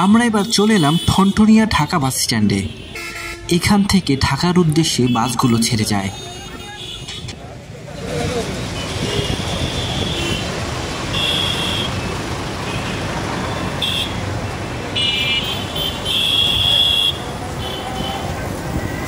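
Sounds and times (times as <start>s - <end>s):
traffic engines and road noise: 0.0s - 19.0s
people's voices: 3.5s - 9.5s.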